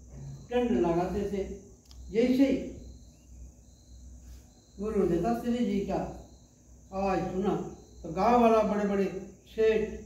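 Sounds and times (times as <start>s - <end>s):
crickets chirping: 0.0s - 10.0s
man speaking: 0.5s - 2.8s, 4.8s - 6.2s.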